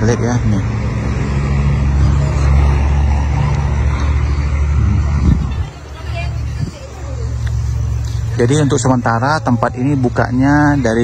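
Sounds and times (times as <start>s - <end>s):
vehicle engine running: 0.0s - 11.0s.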